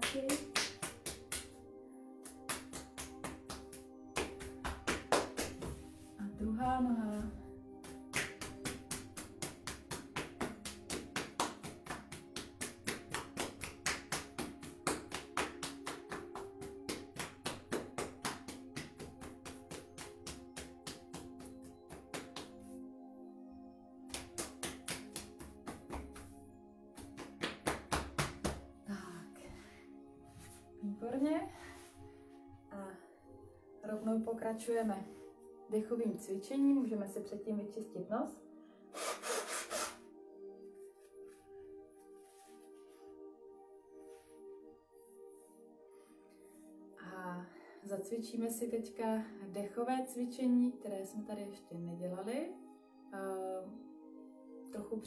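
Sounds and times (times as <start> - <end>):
hands tapping on body: 0.0 - 1.6, 2.2 - 5.9, 7.8 - 22.8, 24.1 - 28.8.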